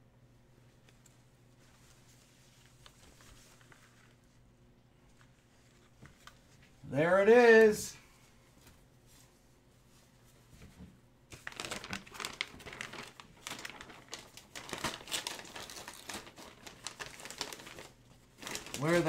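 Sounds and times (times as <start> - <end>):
plastic packaging crinkling: 11.3 - 19.0.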